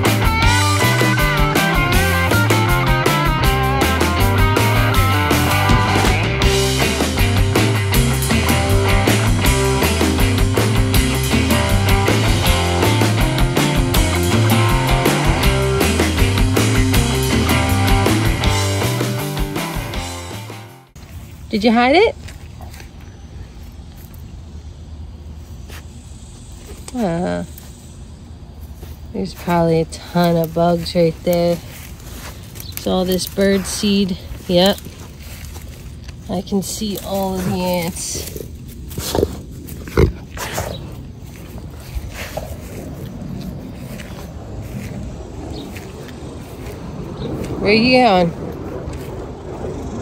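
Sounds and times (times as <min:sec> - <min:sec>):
steady low rumble: 0:00.0 - 0:50.0
dog scuffing soil: 0:28.6 - 0:48.0
dog sniffing: 0:37.0 - 0:43.5.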